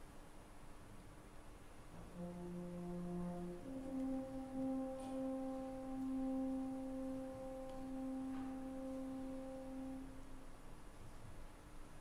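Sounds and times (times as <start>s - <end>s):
french horns holding a soft note: 1.9s - 10.4s.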